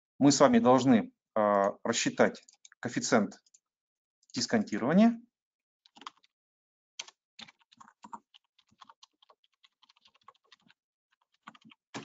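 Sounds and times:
faint keyboard typing: 1.4s - 3.6s, 5.9s - 6.3s, 7.0s - 12.0s.

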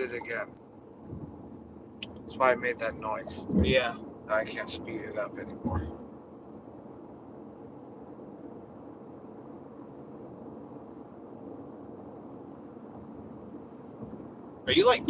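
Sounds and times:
road and engine noise in car: 12.9s - 15.0s.

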